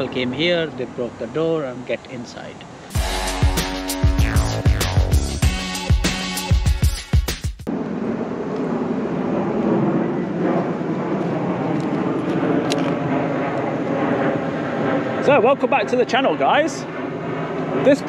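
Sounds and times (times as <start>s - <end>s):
music sting: 2.9s - 7.6s.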